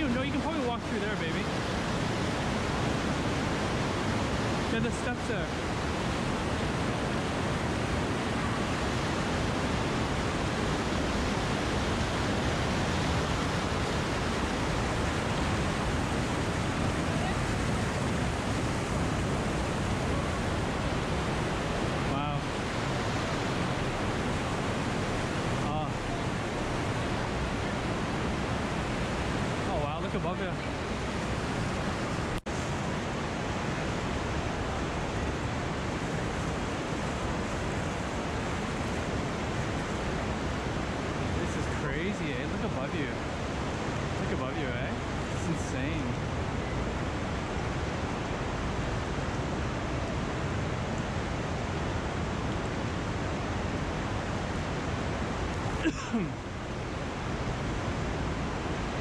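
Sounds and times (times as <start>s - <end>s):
river water rushing over boulders: 0.0s - 59.0s.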